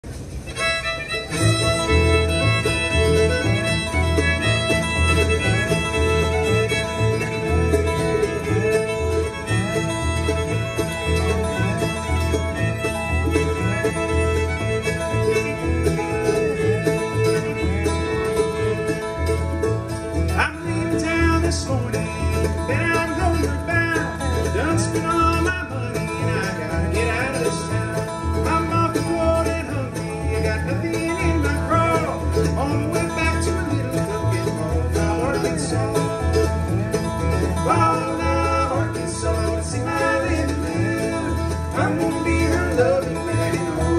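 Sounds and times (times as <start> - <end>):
bluegrass string band playing: 0.0 - 43.9.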